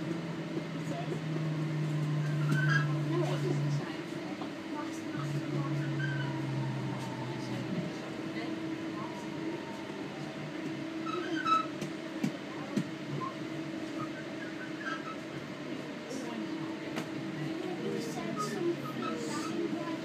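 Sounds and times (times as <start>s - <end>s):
electric traction whine: 0.0s - 4.0s, 4.8s - 11.7s
train running noise: 0.0s - 20.0s.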